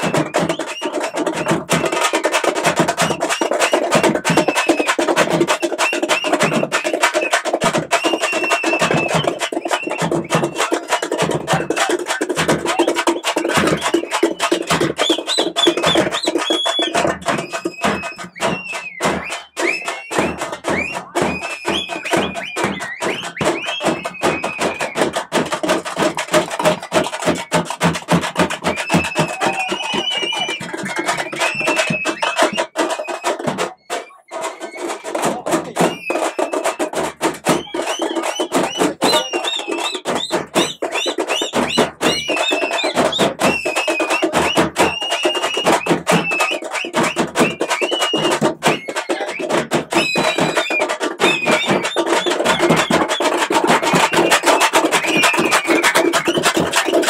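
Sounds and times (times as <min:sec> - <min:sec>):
large drums beaten fast: 0:00.0 - 0:57.0
wind instrument melody: 0:28.6 - 0:56.2.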